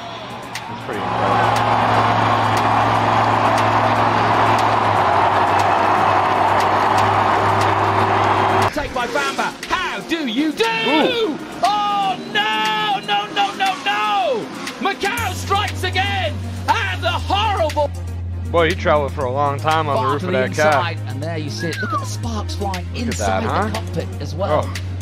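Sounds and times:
monster truck engine running loud: 0.8 - 8.7
person talking: 23.0 - 23.9.

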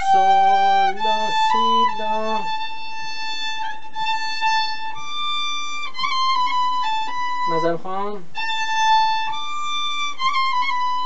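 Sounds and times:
man's low voice: 0.0 - 2.5
solo violin melody: 0.0 - 11.0.

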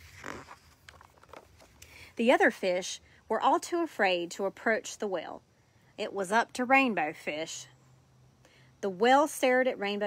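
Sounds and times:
page turning swish: 0.0 - 1.8.

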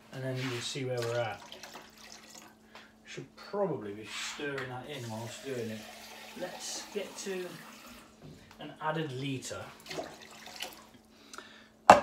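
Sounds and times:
water trickling into pot: 1.2 - 2.6, 5.0 - 8.0, 9.8 - 11.0.

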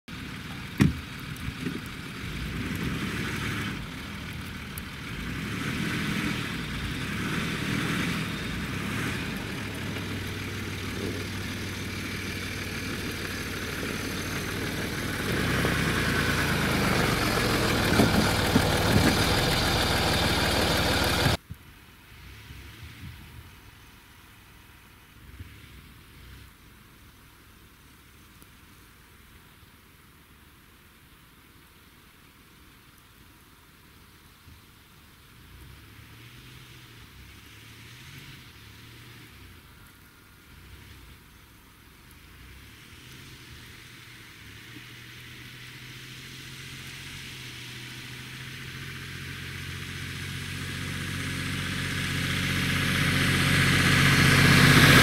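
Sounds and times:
vehicle engine running: 0.1 - 21.4, 37.0 - 55.0.

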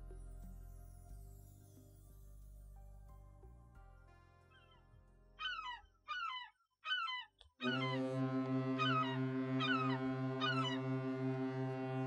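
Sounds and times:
soft background music: 0.0 - 5.8
seagulls crying: 5.4 - 8.1, 8.8 - 10.9.

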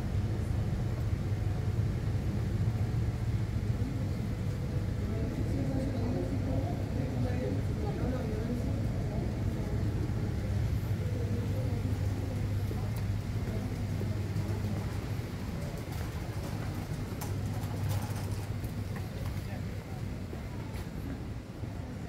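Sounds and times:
steady low hum: 0.0 - 22.0
distant indistinct voices: 0.2 - 22.0.

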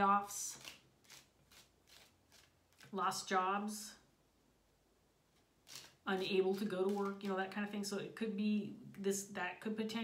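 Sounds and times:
cards being shuffled: 0.5 - 3.0, 5.4 - 7.4.

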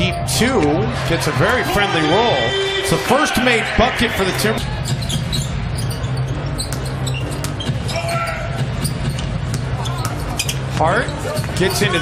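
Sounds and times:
arena crowd noise: 0.0 - 6.5, 7.8 - 12.0.

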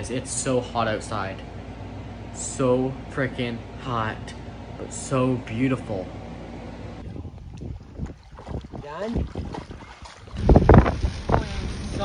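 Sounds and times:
wind and rain buffeting microphone: 7.0 - 12.0.

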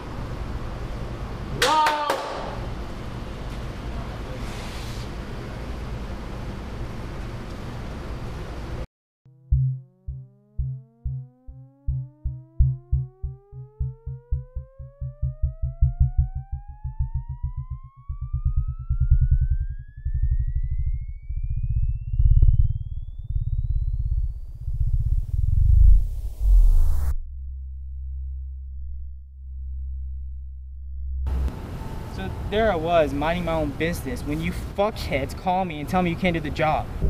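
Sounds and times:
rising synthesized tone: 9.3 - 32.0
low synth pulses: 9.3 - 32.6.

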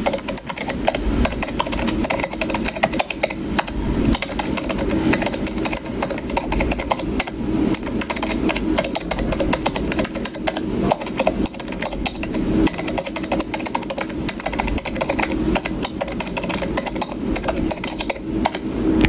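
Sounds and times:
keyboard typing clicks: 0.0 - 18.7.

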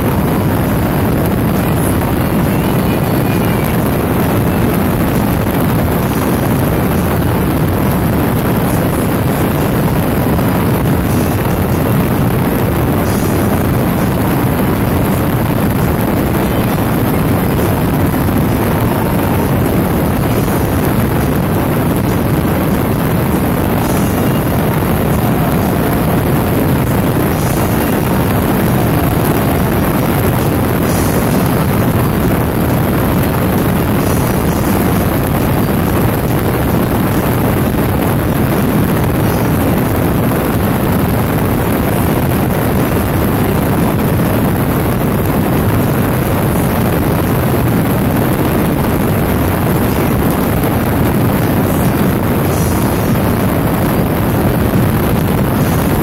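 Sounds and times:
motorcycle engine drone: 0.0 - 56.0
wind rushing on microphone: 0.0 - 56.0.

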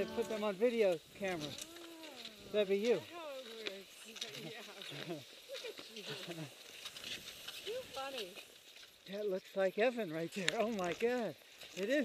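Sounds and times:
person making wordless vocal sounds: 0.0 - 0.4.

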